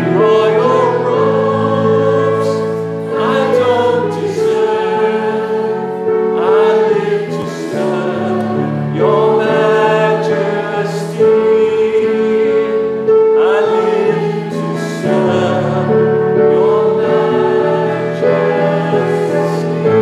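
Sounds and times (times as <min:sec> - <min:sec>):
group singing worship song: 0:00.0 - 0:20.0
sustained instrumental accompaniment: 0:00.0 - 0:20.0.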